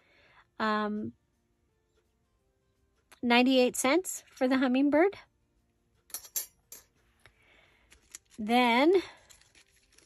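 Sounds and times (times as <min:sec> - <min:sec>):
metal dies clinking: 0:06.1 - 0:06.9
plastic packaging rustling: 0:07.8 - 0:10.0.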